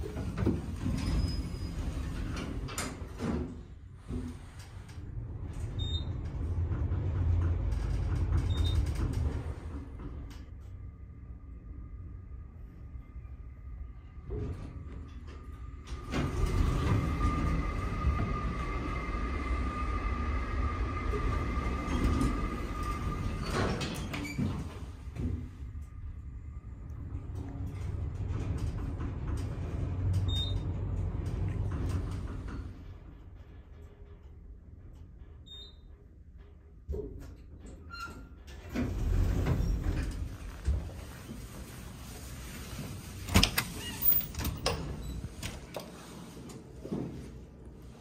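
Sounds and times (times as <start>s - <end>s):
elevator car low rumble: 0.0s - 48.0s.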